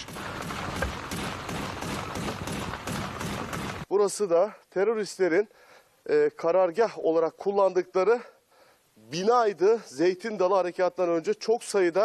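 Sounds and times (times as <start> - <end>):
hissing field noise: 0.0 - 3.9.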